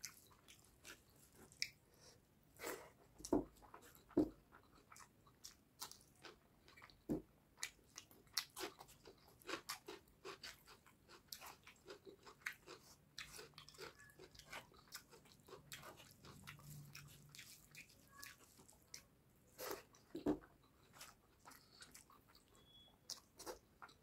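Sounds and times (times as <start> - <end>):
wet chewing and lip smacks: 0.0 - 1.8, 3.6 - 24.0
fingers squishing food: 3.1 - 24.0.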